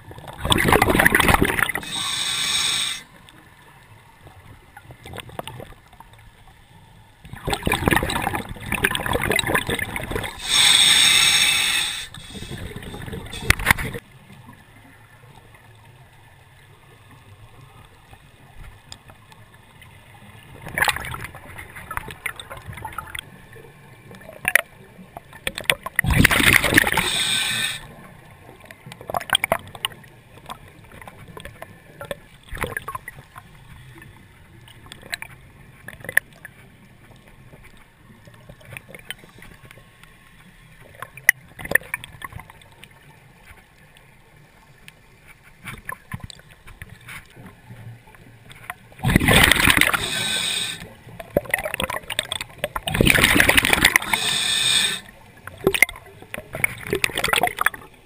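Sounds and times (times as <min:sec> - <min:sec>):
faint crackle of small clicks: 0:00.0 - 0:02.0, 0:03.0 - 0:10.4, 0:12.1 - 0:27.0, 0:27.8 - 0:58.0
underwater exhaled bubbles gurgling: 0:00.0 - 0:06.4, 0:07.2 - 0:45.1, 0:45.8 - 0:58.0.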